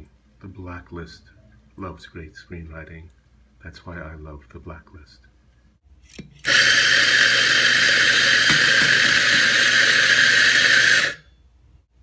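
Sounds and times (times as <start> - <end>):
coffee grinder grinding: 6.4 - 11.2.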